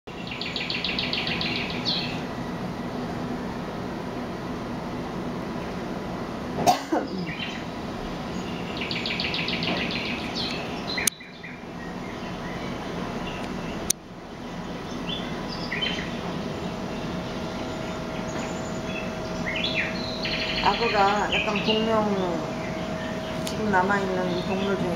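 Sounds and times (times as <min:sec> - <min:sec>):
bird chirping: 0:00.1 - 0:02.3, 0:07.1 - 0:13.9, 0:14.6 - 0:24.9
steady background noise: 0:00.1 - 0:24.9.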